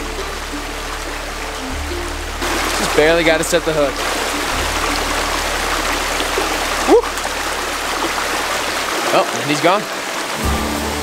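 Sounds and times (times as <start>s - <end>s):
stream running over rocks: 0.0s - 11.0s.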